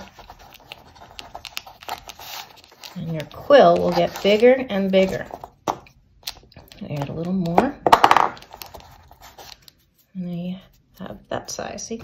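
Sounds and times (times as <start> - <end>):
newspaper crinkling: 0.0 - 5.6, 8.5 - 10.0.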